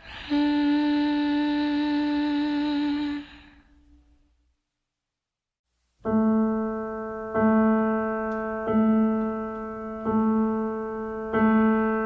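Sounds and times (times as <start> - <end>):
woman singing long note: 0.0 - 3.5.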